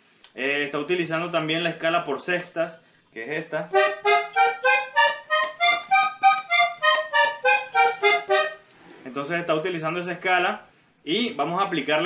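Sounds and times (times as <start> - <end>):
button accordion playing a scale: 3.7 - 8.7.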